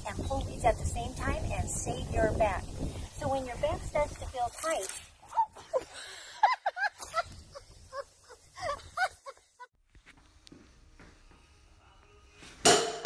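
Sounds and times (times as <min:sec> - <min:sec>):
woman laughing: 0:05.2 - 0:09.7.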